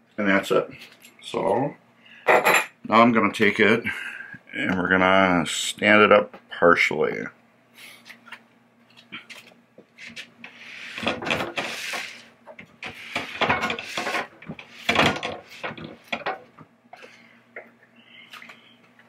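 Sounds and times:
metal clanks and wooden knocks: 12.5s - 16.7s.

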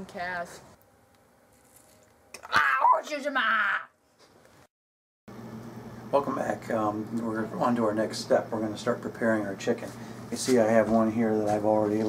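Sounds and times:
high-pitched vocal cry: 2.4s - 3.9s.

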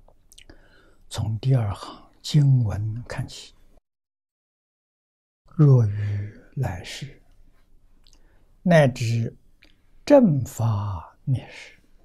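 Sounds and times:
faint mouth clicks: 0.3s - 0.6s, 8.0s - 8.3s
elderly man speaking low: 5.5s - 7.2s, 10.1s - 11.8s.

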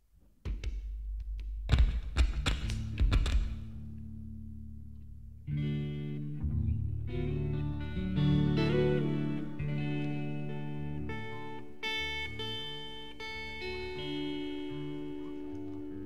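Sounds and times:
guitar playing sustained chords: 2.8s - 16.0s.

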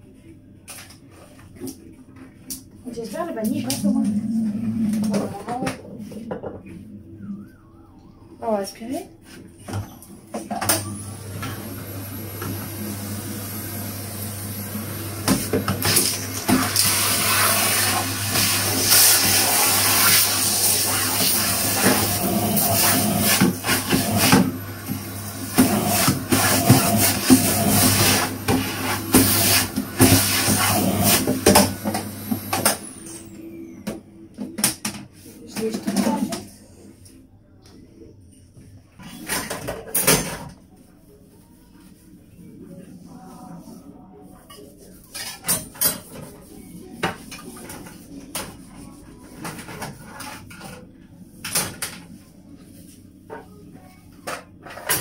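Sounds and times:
vacuum cleaner running: 3.7s - 6.9s, 10.4s - 34.2s.

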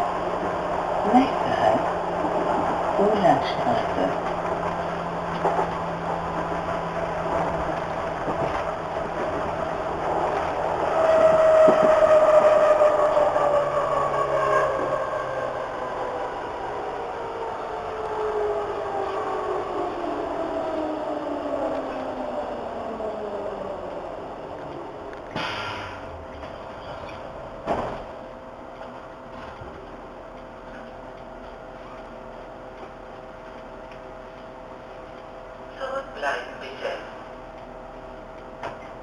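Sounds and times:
wheels rumbling on rail: 0.0s - 39.0s.

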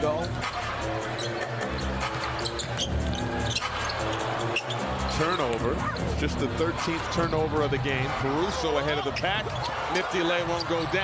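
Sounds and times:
arena music: 0.0s - 11.0s.

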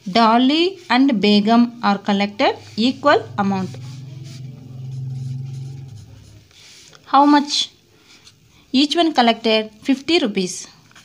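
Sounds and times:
low engine-like hum: 2.1s - 6.5s.

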